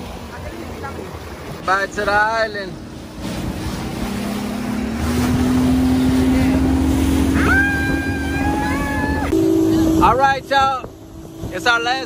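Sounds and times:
motorboat engine: 0.0s - 12.0s
wind and water rushing: 0.0s - 12.0s
woman yelling excitedly: 7.3s - 9.3s.

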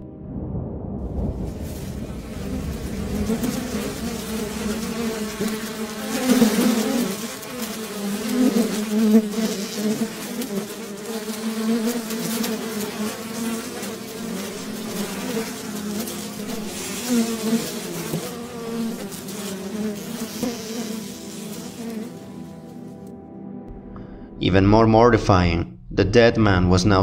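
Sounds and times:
buzzing insect drone: 1.8s - 22.9s.

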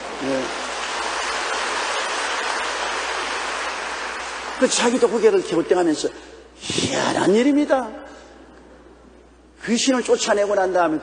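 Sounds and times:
crowd clapping: 0.0s - 5.6s.

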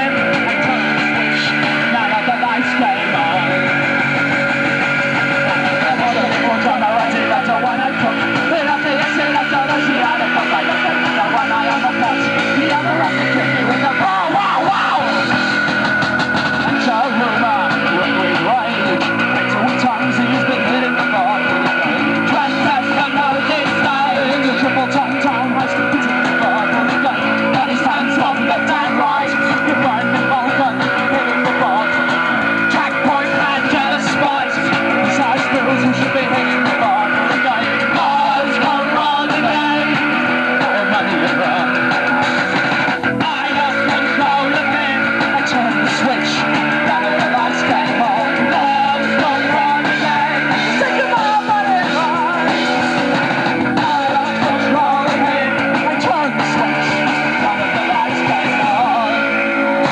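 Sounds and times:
live rock band playing: 0.0s - 59.9s.

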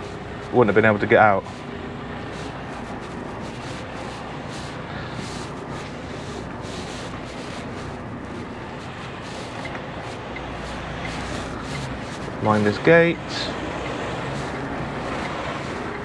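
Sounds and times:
diesel truck engine running: 0.0s - 16.0s.

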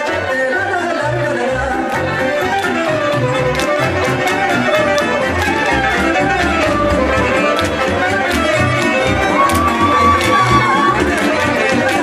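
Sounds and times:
folk dance music on accordion: 0.0s - 12.0s
dancers' steps tapping: 1.9s - 12.0s
high steady whoop: 9.2s - 11.2s.

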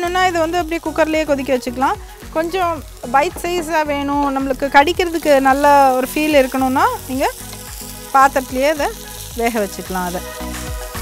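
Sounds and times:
background music: 0.0s - 11.0s
vegetables sizzling in a frying pan: 0.0s - 11.0s.

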